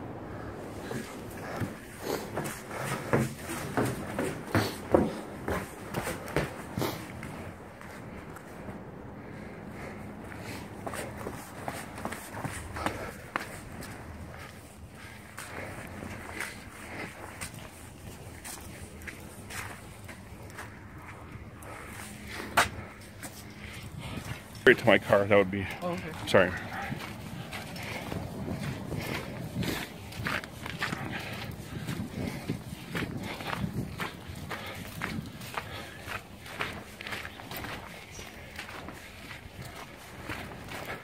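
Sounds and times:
footsteps going down stairs: 0:00.8 - 0:41.0
shuffling on the ground: 0:09.8 - 0:41.0.

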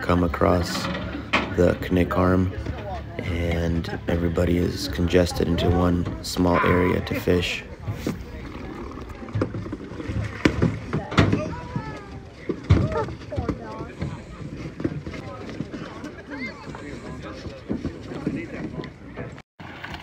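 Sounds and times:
indistinct talk of people: 0:00.0 - 0:19.4.

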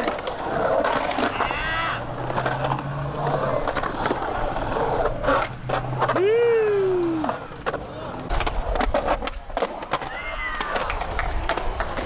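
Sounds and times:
skateboard wheels rolling on concrete: 0:00.0 - 0:12.0.

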